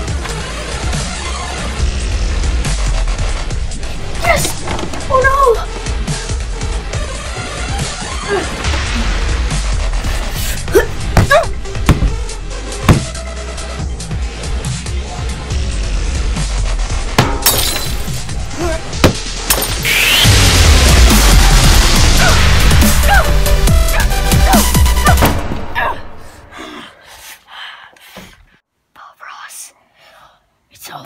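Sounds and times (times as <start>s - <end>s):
music: 0.0s - 26.9s
child speaking: 4.2s - 5.8s, 30.7s - 31.0s
shattering crash: 17.2s - 22.9s
child whispering: 28.9s - 31.0s.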